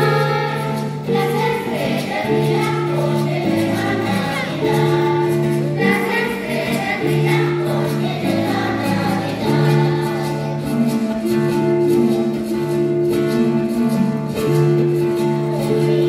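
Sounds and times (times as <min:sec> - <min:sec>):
children's choir singing: 0:00.0 - 0:12.8, 0:14.8 - 0:16.0.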